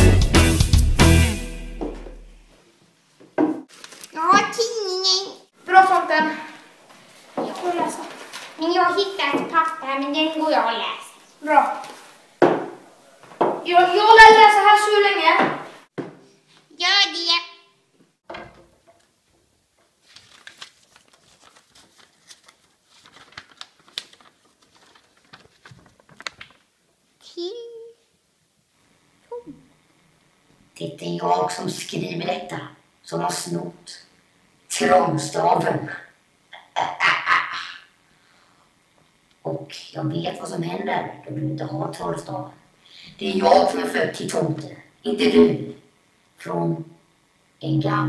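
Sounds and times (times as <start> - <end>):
music: 0.0 - 2.5
paper crinkling as unfolded: 3.7 - 4.2, 7.6 - 8.6, 20.0 - 26.7.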